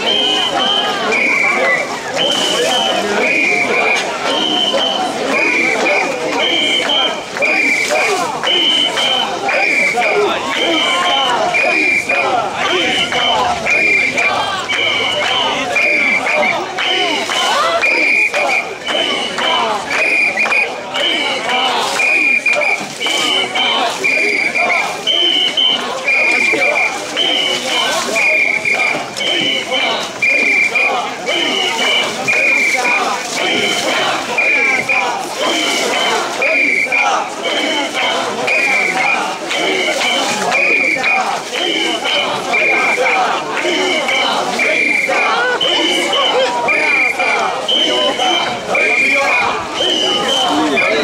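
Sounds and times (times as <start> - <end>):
shrill whistle blasts: 0.0 - 12.3, 12.9 - 20.8, 22.0 - 33.0, 35.9 - 37.6, 44.6 - 51.0
crowd chanting: 0.0 - 51.0.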